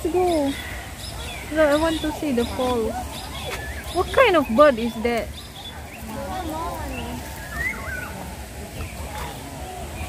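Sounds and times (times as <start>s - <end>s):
faint background voices: 0.0s - 10.0s
bird whistled calls: 0.5s - 6.1s, 6.8s - 8.3s.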